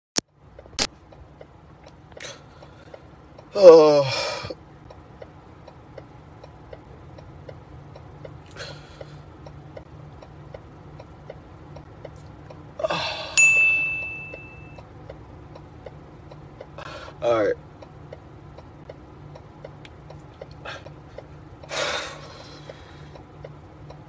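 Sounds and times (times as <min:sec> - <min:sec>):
faint steady ticking: 0:00.3 - 0:24.0
bright ding: 0:13.4 - 0:14.8.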